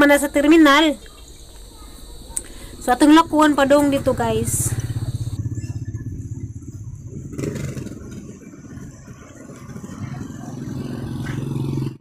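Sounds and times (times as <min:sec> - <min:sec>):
motorcycle engine running: 0:01.3 - 0:12.0.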